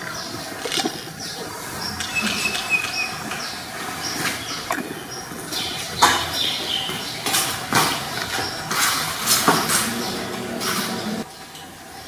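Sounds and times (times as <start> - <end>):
birds chirping: 0.0 - 12.0.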